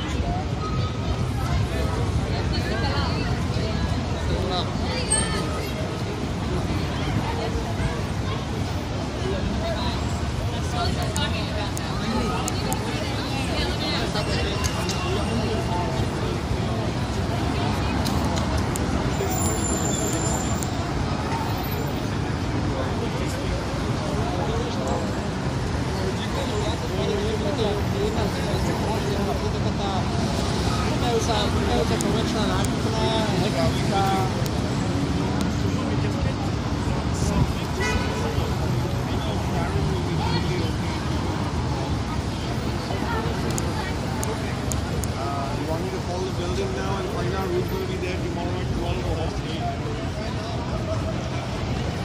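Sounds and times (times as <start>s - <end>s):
crowd chatter: 0.0s - 52.0s
passers-by talking: 0.0s - 52.0s
traffic noise: 0.0s - 52.0s.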